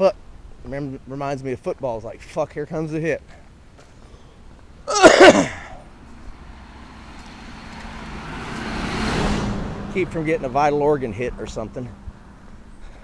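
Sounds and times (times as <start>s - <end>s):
person coughing: 4.9s - 5.8s
vehicle passing by: 5.9s - 13.0s.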